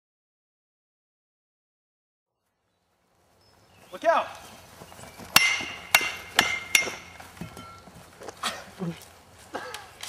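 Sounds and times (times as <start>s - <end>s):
metal weapons clanging: 5.4s - 7.9s.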